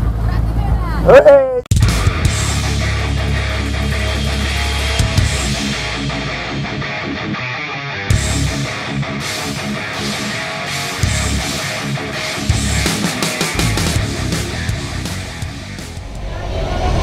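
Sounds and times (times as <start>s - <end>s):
heavy rock music: 1.7s - 16.3s.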